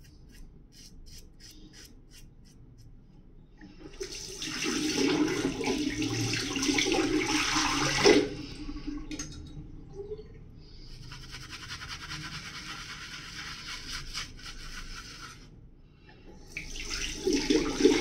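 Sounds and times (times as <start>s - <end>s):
tap water running: 3.8s - 8.4s
shaving brush swishing lather: 11.1s - 15.4s.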